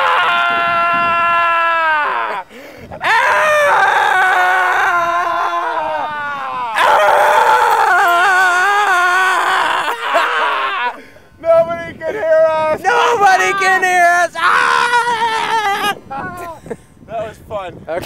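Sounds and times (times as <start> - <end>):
man yelling in howling cries: 0.0 - 16.6.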